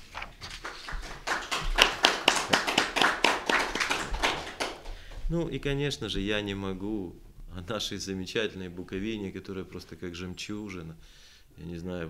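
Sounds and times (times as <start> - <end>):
small audience applauding: 0.0 - 5.2.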